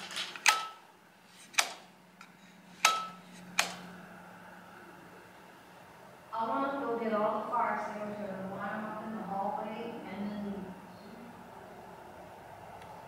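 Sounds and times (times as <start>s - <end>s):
light switch clicking: 2.8s - 3.8s.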